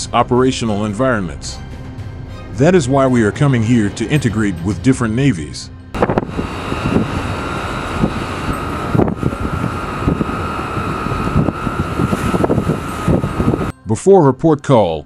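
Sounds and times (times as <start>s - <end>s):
gusting wind: 5.9s - 13.7s
machinery hum with high whine: 6.0s - 13.7s.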